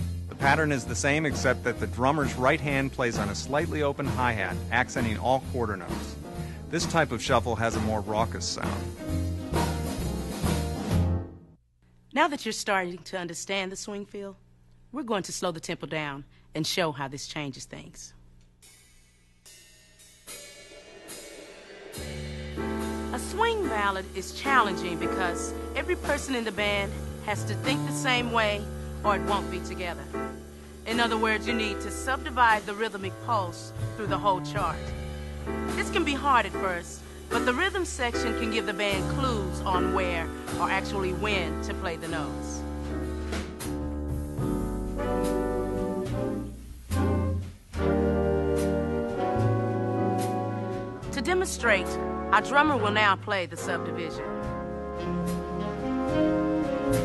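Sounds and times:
big band playing swing ballad: 0.0 - 11.3, 21.9 - 57.0
cymbal strikes: 18.6 - 24.1, 34.6 - 39.7
held horn chords: 21.1 - 57.0.

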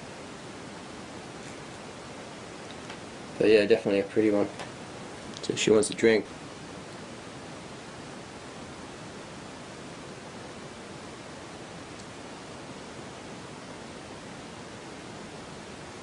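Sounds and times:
steady background hiss: 0.0 - 16.0.

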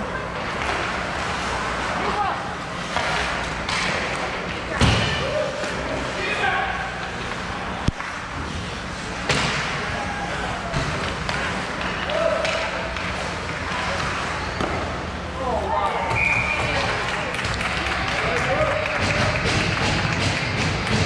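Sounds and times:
low rink hum: 0.0 - 21.0
hockey sticks and puck knocking: 10.7 - 13.8, 18.6 - 21.0.

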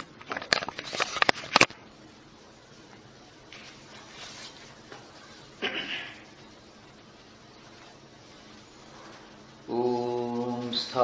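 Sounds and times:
man chanting: 9.6 - 11.0.

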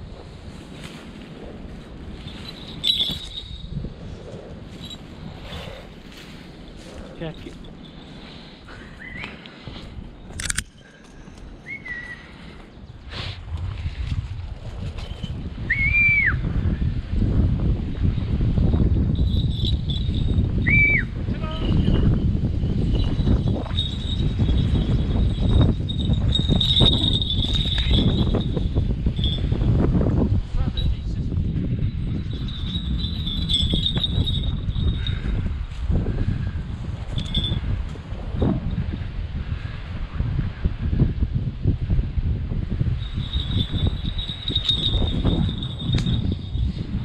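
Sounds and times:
wind rumble: 0.0 - 47.0
falconry bells tinkling: 1.9 - 4.0, 4.7 - 6.3, 7.2 - 9.0, 18.3 - 20.6, 21.4 - 29.8, 30.6 - 37.9, 42.8 - 47.0
high ringing tone: 2.2 - 3.8, 19.0 - 29.7, 30.8 - 35.8, 37.1 - 37.7, 42.9 - 46.8.

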